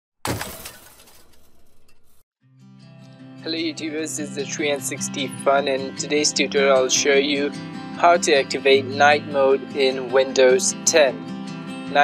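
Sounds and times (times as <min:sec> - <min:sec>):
glass shattering: 0:00.2 - 0:02.2.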